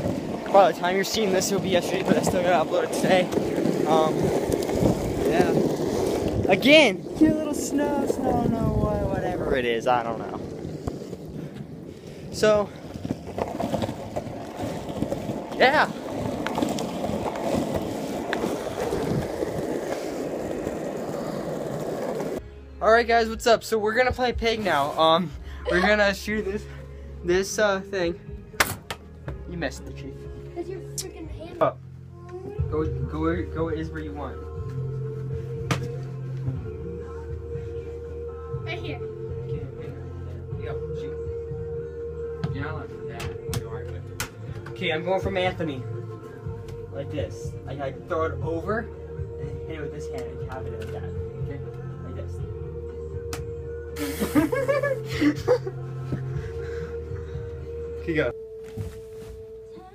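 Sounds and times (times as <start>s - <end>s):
wheels rolling over asphalt: 0.0s - 22.4s
voices talking: 0.2s - 11.4s
music with held note and bass: 22.4s - 59.9s.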